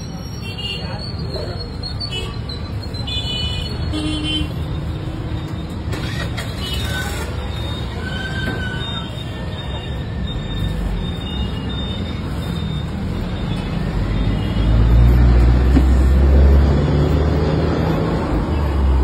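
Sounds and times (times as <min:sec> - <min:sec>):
street traffic noise: 0:00.0 - 0:19.0.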